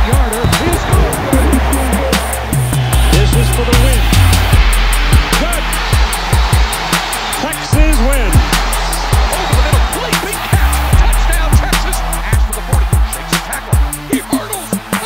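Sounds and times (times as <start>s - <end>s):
low swooping tones: 0.4s - 5.8s.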